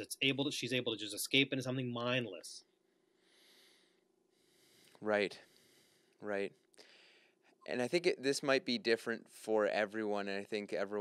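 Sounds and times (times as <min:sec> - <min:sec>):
faint soft hiss: 0:00.0 - 0:11.0.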